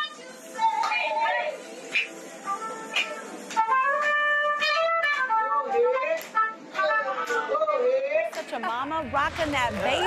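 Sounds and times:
instrumental accompaniment: 1.9 - 10.0.

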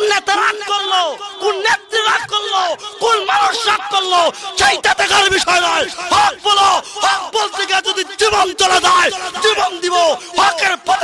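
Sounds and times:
man preaching over loudspeaker: 0.0 - 11.0.

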